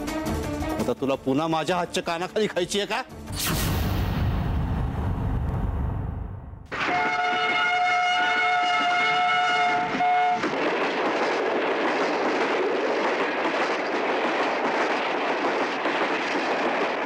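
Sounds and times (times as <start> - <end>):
train horn blast: 6.7 - 10.5.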